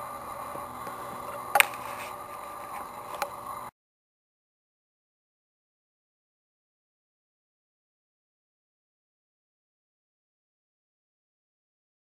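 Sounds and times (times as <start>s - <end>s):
faint background hum: 0.0s - 3.7s.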